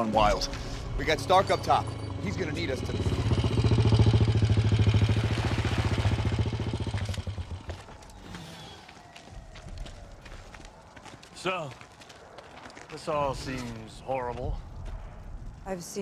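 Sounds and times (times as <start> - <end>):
motorcycle engine puttering: 1.2 - 8.1.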